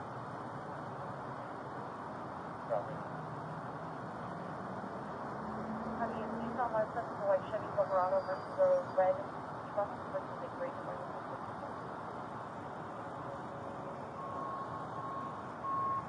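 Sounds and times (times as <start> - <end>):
street background noise: 0.0 - 16.0.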